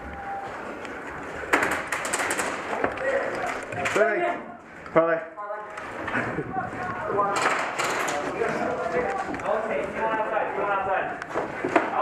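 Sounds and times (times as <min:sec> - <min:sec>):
men talking over one another: 0:05.2 - 0:11.2.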